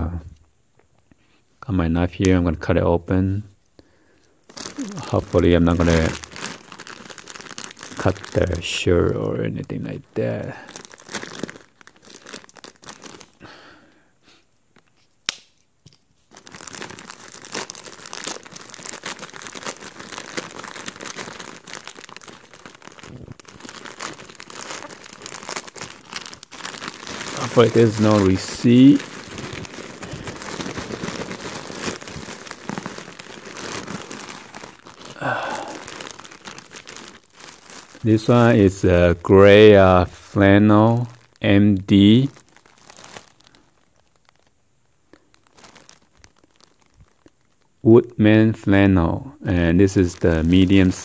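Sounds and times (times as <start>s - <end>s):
plastic mailer crinkling and tearing: 4.4s - 13.5s, 16.3s - 47.7s, 49.5s - 51.0s.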